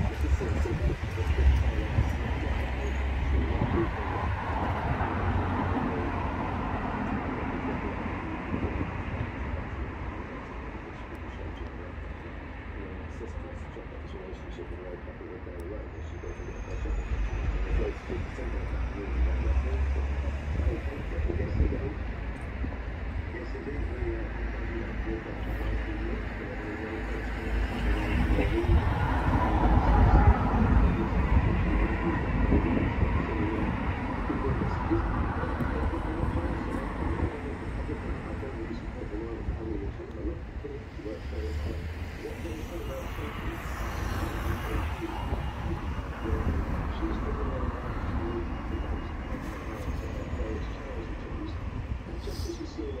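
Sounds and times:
indistinct voices: 0.0s - 53.0s
traffic rumble: 0.0s - 53.0s.

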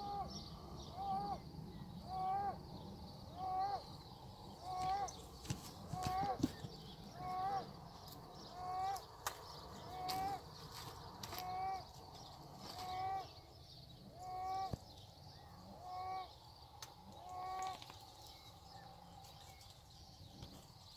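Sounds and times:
animal calling: 0.0s - 10.6s, 11.2s - 13.4s, 14.0s - 14.8s, 15.4s - 16.4s, 17.0s - 17.9s.

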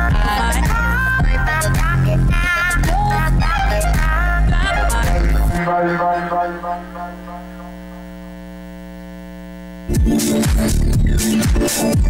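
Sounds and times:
loud electronic music: 1.6s - 8.3s
steady electrical hum: 5.0s - 9.9s.

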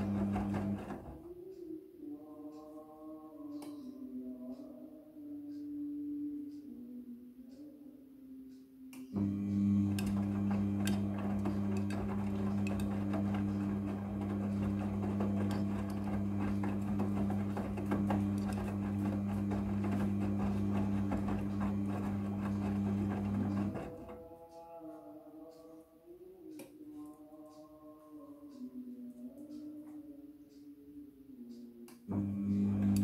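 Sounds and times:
washing machine motor humming: 0.0s - 1.6s, 9.1s - 24.6s, 32.1s - 33.0s.

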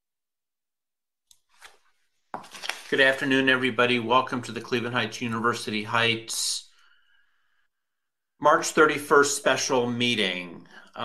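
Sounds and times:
man speaking: 2.9s - 6.7s, 8.4s - 11.0s.

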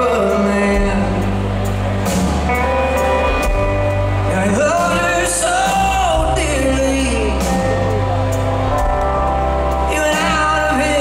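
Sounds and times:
bass guitar: 0.0s - 11.0s
drum kit: 0.0s - 11.0s.

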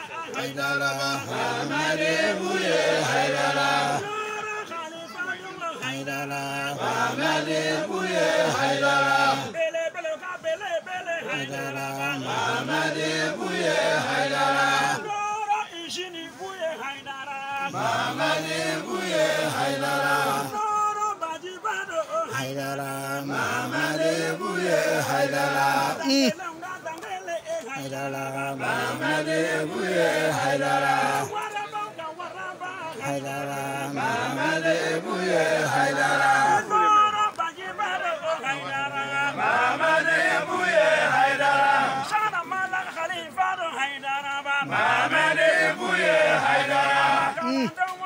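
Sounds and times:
men chanting: 0.0s - 47.8s.

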